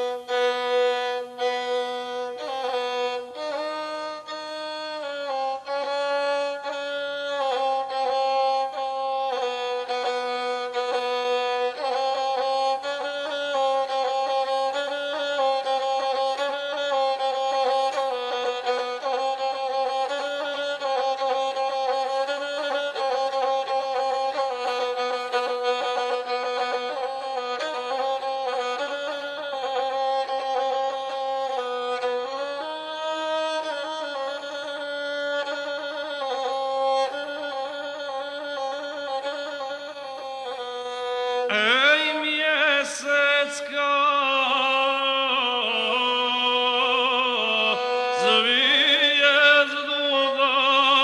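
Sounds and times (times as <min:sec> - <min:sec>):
bowed single-string fiddle: 0:00.0 - 0:51.0.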